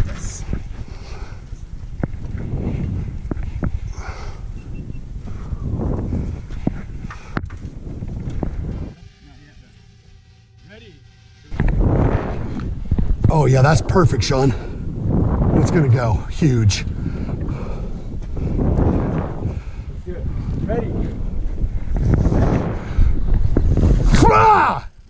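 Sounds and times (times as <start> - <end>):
wind rushing over microphone: 0.0 - 9.6, 11.5 - 25.0
faint tones: 8.0 - 14.9.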